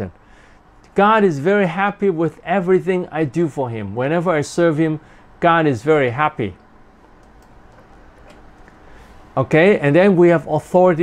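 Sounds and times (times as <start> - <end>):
faint clicks: 6.6 - 8.8.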